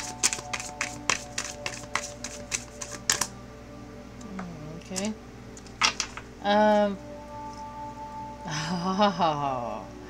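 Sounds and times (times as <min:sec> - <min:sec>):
cards being shuffled: 0:00.0 - 0:03.3.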